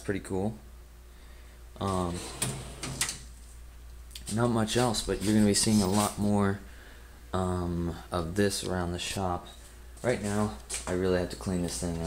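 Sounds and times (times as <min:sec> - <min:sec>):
drawer being pushed shut: 0:02.1 - 0:03.2.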